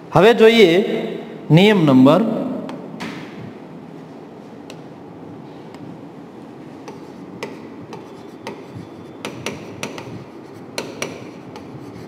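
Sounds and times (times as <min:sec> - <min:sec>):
steady low hiss: 0:00.0 - 0:12.0
pen tapping on whiteboard screen: 0:06.8 - 0:10.2, 0:10.8 - 0:11.7.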